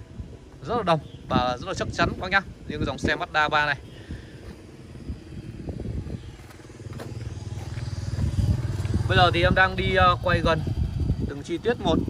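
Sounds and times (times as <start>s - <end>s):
engine rumbling: 0.0s - 12.0s.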